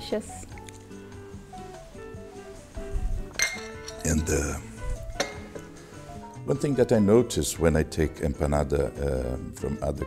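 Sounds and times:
soft background music: 0:00.0 - 0:10.0
tableware clinking on china: 0:03.3 - 0:04.5, 0:05.2 - 0:05.7.

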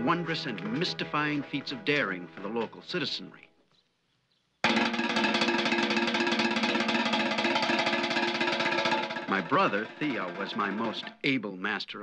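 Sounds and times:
drum roll on metal washtub: 0:04.6 - 0:11.2.

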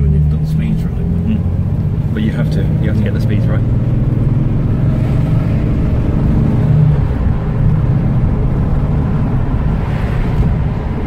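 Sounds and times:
car engine running: 0:00.0 - 0:11.0
road noise: 0:00.0 - 0:11.0.

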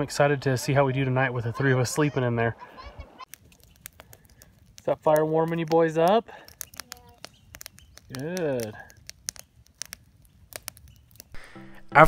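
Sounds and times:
campfire crackling: 0:00.0 - 0:12.0
sharp fire pops: 0:03.2 - 0:11.6.

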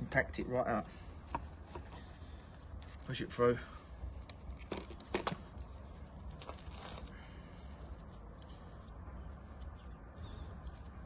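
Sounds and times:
faint clicks and scrapes: 0:04.1 - 0:11.0.

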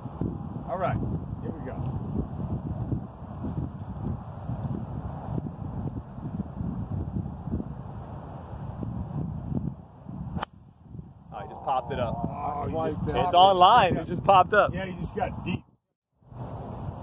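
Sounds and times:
wind buffeting microphone: 0:00.0 - 0:17.0
golf club striking ball: 0:10.4 - 0:10.6.

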